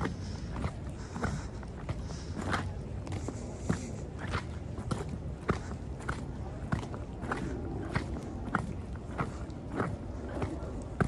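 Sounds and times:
footsteps on wet dirt path: 0.0 - 11.0.

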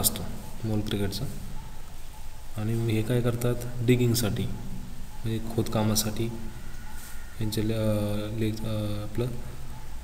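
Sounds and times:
man lecturing: 0.0 - 1.5, 2.5 - 6.6, 7.4 - 9.6.

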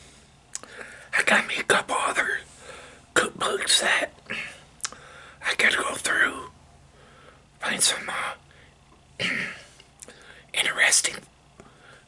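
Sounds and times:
man whispering: 1.1 - 2.5, 3.1 - 4.6, 5.4 - 6.6, 7.6 - 8.4, 10.4 - 11.3.

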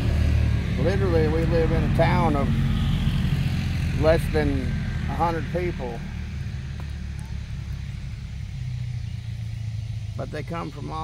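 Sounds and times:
car passing on road: 0.0 - 11.0.

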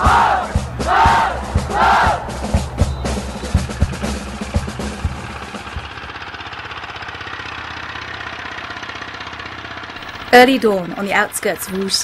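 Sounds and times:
engine running with fast pulse: 0.0 - 12.0.

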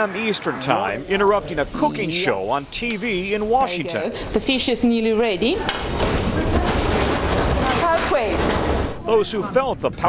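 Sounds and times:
objects rattling: 5.6 - 9.0.

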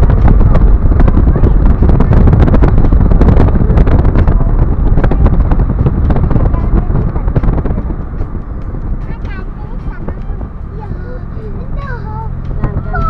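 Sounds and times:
road and wind rumble: 0.0 - 13.0
wind buffeting on microphone: 0.0 - 13.0.

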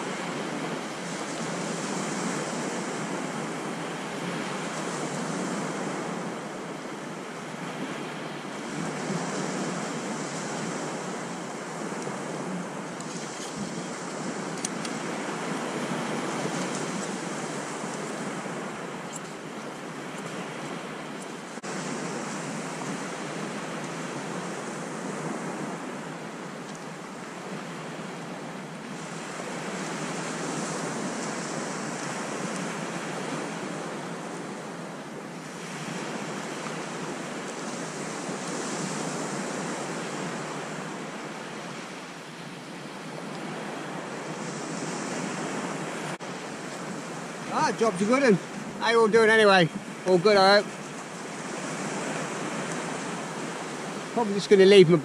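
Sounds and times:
small waves breaking on sand: 0.0 - 55.0
wind on microphone: 0.0 - 55.0.

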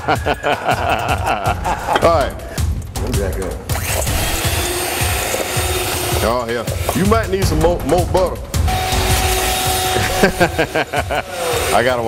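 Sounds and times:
electric hand mixer running: 3.7 - 7.0, 8.7 - 12.0
beaters churning crumbs in bowl: 3.8 - 7.1.

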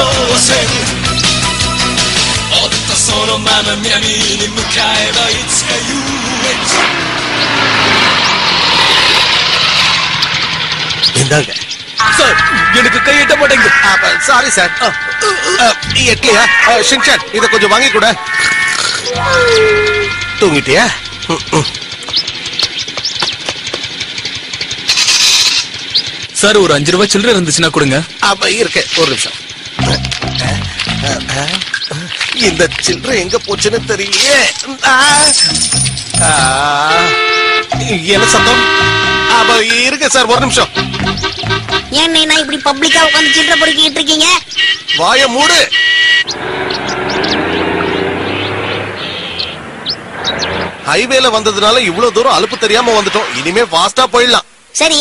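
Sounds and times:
birds chirping: 0.0 - 54.7
cartoon scooter engine idling: 10.1 - 46.4.

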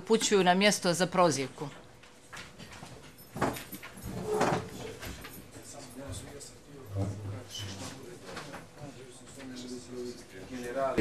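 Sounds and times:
people shuffling and moving: 1.6 - 11.0.

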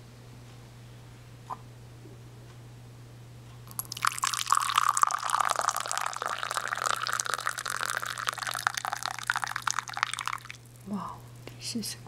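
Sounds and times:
tea pouring into ceramic cup: 3.7 - 10.6.

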